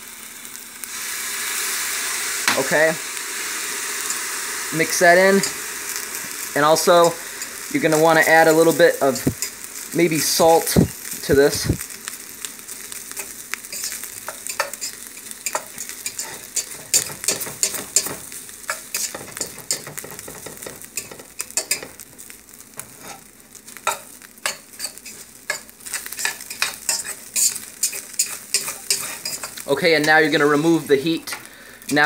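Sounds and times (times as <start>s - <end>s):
rice sizzling in a pot: 0.0s - 32.0s
utensil scraping and tapping pot: 13.7s - 22.0s, 23.8s - 30.2s.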